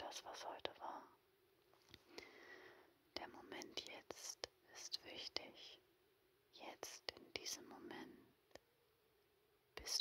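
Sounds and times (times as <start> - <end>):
woman whispering: 0.0 - 1.2, 3.1 - 5.9, 6.5 - 8.6, 9.8 - 10.0.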